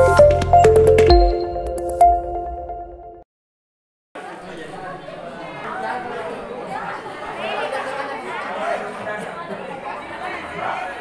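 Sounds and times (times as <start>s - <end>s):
indistinct group chatter: 4.2s - 11.0s.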